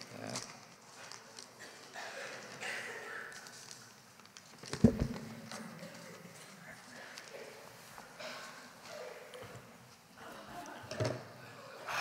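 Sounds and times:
taps and rustling at lectern: 0:03.4 - 0:06.2.

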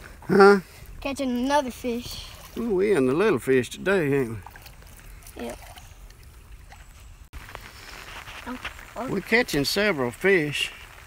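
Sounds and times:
light rain on water and umbrella: 0:04.2 - 0:11.0.

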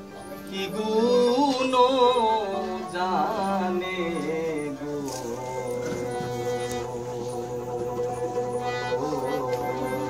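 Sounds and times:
folk song instrumental drone: 0:00.0 - 0:10.0
person singing: 0:00.0 - 0:10.0.

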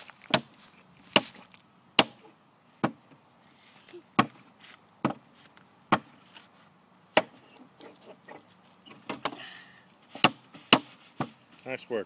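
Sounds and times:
hammer striking nail into wood: 0:02.0 - 0:02.2.

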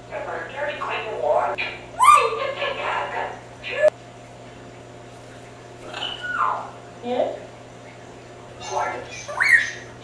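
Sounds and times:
parrot two-part call: 0:09.3 - 0:09.8.

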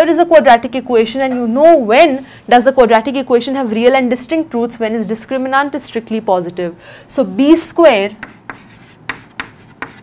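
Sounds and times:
chalk scratching on chalkboard: 0:08.1 - 0:10.0.

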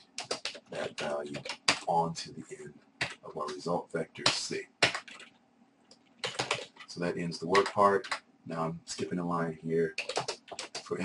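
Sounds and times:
computer keyboard typing: 0:00.0 - 0:01.9, 0:03.0 - 0:03.6, 0:04.2 - 0:06.9, 0:07.5 - 0:08.2, 0:09.9 - 0:11.0.

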